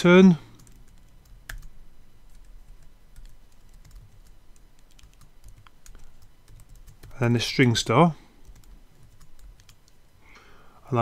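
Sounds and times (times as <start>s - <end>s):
computer keyboard keystrokes: 0.6s - 1.7s, 3.2s - 7.2s, 8.4s - 10.0s.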